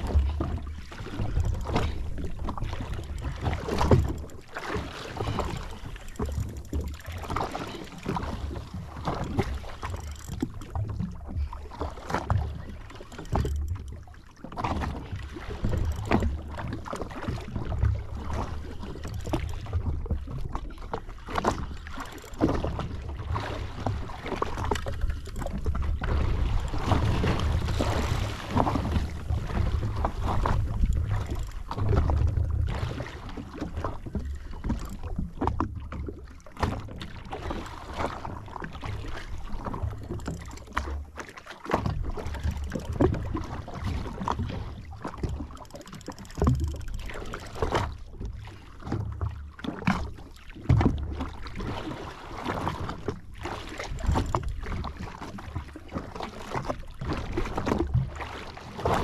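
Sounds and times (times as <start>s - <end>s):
waves slapping against hull: 0.0s - 59.0s.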